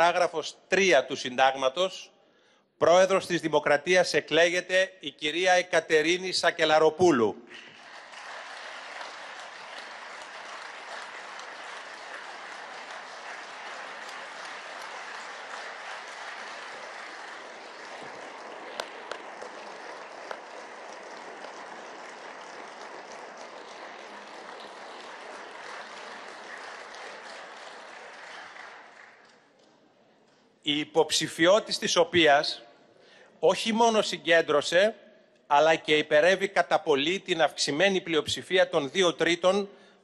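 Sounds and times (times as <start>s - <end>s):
crowd applauding: 7.5s - 29.8s.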